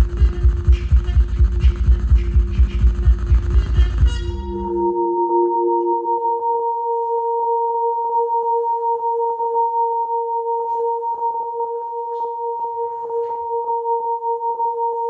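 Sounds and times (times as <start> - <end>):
held horn tones: 0.0 - 6.1.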